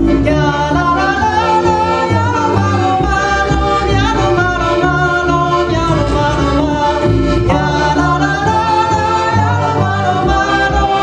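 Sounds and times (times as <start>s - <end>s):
accordion: 0.0s - 11.0s
double bass: 0.0s - 11.0s
woman singing into microphone: 0.3s - 11.0s.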